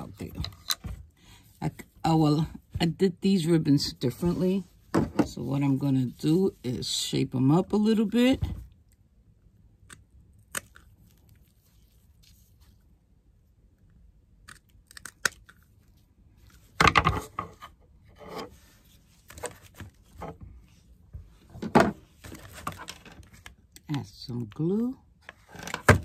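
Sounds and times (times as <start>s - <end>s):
ribbon rustling: 10.9s - 13.0s.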